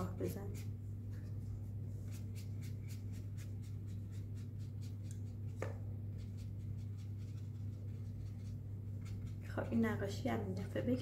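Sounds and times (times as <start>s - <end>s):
low electrical hum: 0.0s - 11.0s
paintbrush swishing on paper: 0.2s - 9.8s.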